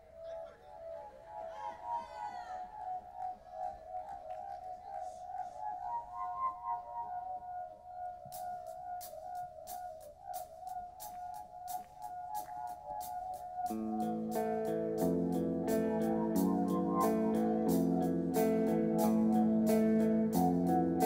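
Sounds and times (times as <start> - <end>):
wavering instrumental drone: 6.9 - 21.0.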